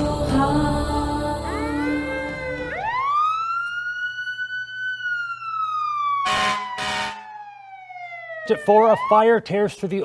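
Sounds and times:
emergency siren wailing: 0:01.4 - 0:09.8.

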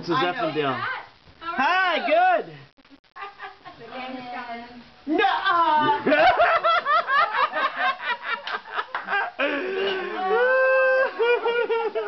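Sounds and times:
woman sobbing laughter: 0:05.8 - 0:12.0
woman wailing: 0:09.9 - 0:11.5.

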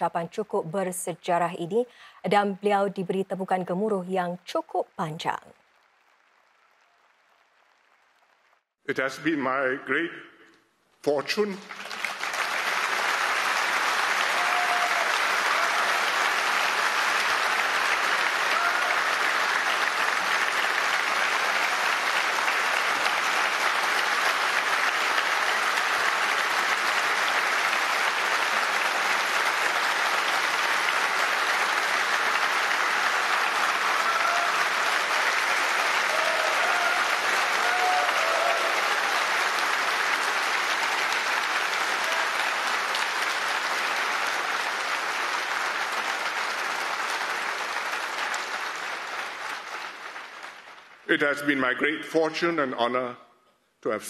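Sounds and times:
audience applauding: 0:04.6 - 0:08.8, 0:11.1 - 0:51.8.

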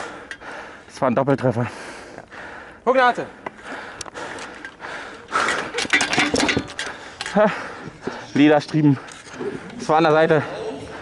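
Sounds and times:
voices: 0:02.7 - 0:11.0
weapons and shields clattering: 0:04.4 - 0:07.5.

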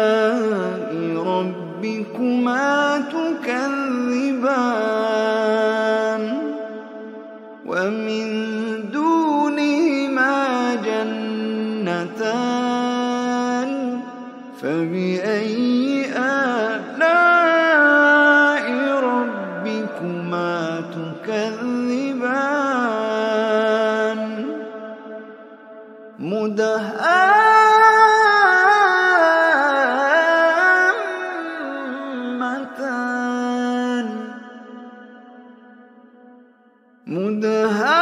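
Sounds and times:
man chanting melodically: 0:00.0 - 0:35.7, 0:37.1 - 0:38.0.

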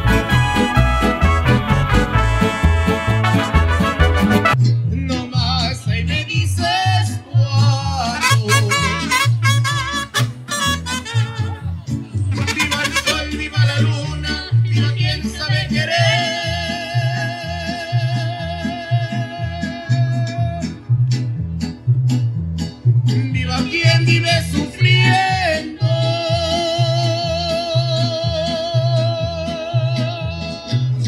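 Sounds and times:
deep bass guitar line: 0:00.0 - 0:31.0
mariachi band playing: 0:00.0 - 0:31.0.

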